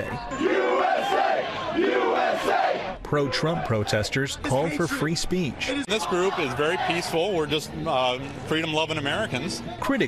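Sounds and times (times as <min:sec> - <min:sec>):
crowd shouting together: 0:00.0 - 0:03.9, 0:05.9 - 0:07.3.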